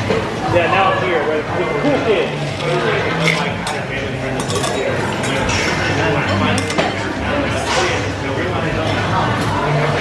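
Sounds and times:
chatter of a busy bar: 0.0s - 10.0s
metal tools and glassware clinking: 2.4s - 7.0s.

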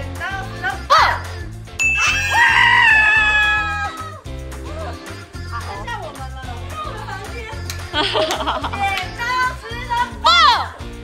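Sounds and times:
background music with beat: 0.0s - 11.0s
young woman shrieking: 2.0s - 4.2s.

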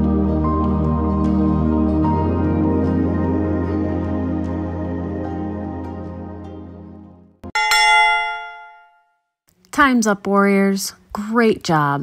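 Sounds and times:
soft background music: 0.0s - 7.4s
bell chime: 7.6s - 9.2s.

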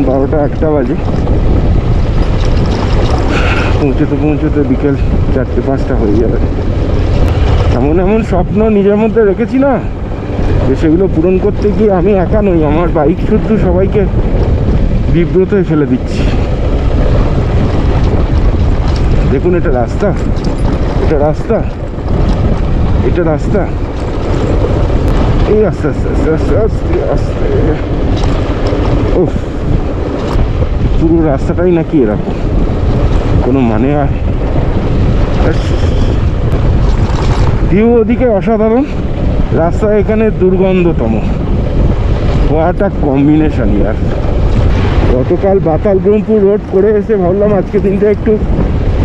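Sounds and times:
motorcycle low rumble: 0.0s - 49.0s
wind rushing over microphone: 0.0s - 49.0s
person speaking: 3.2s - 6.5s, 45.1s - 48.5s.

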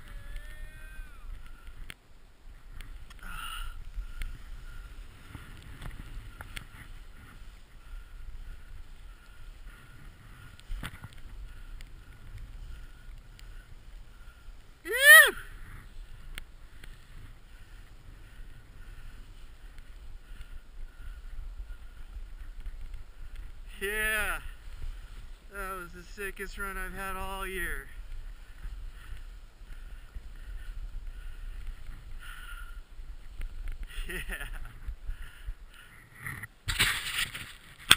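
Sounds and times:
wind on camera: 0.0s - 37.9s
small clicks: 1.3s - 2.0s
snowboard carving through powder: 2.4s - 37.9s.

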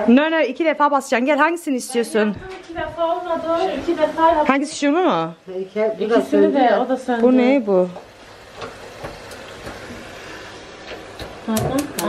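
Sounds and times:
gas burner hiss: 7.2s - 12.0s.

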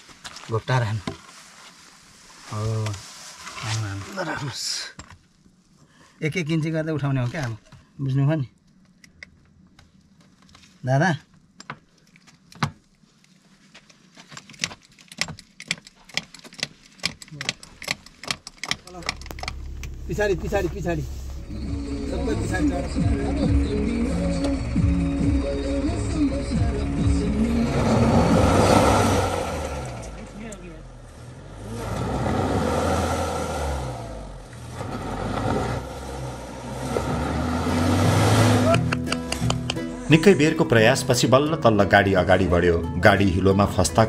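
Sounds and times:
person speaking: 18.8s - 23.4s
low steady hum: 18.8s - 32.5s
people's voices: 18.9s - 24.6s
suv engine revving: 18.9s - 39.8s.

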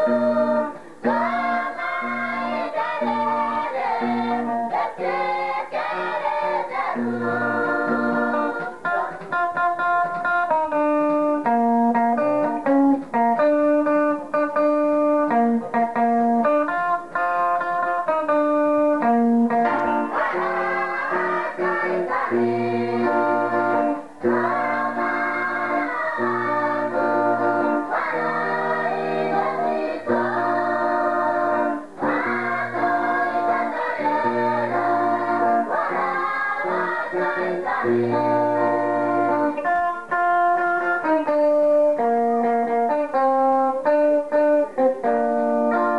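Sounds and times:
voices singing: 0.0s - 10.6s, 19.0s - 42.6s
held instrument notes: 0.0s - 45.9s.

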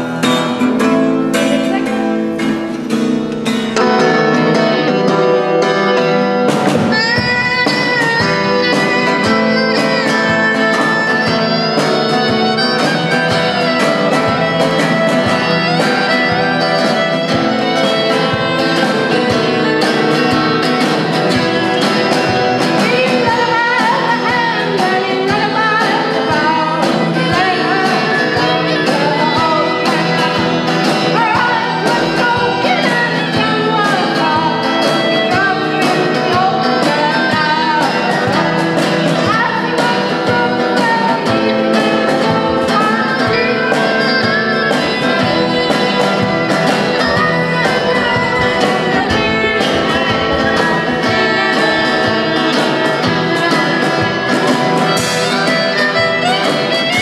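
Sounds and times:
acoustic guitar strumming: 0.0s - 57.0s
woman singing: 0.0s - 57.0s.

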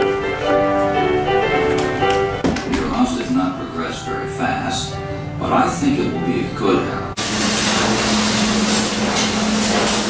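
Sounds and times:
loud even hiss: 7.2s - 10.0s.

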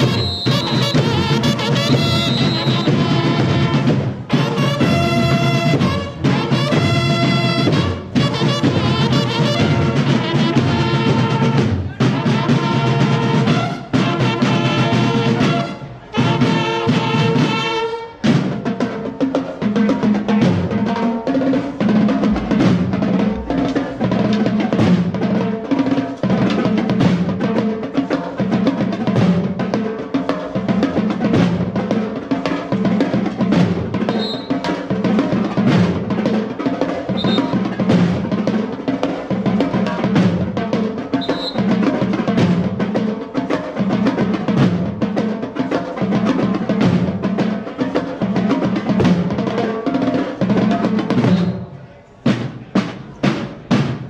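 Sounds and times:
drum corps playing cadence: 0.0s - 54.0s.

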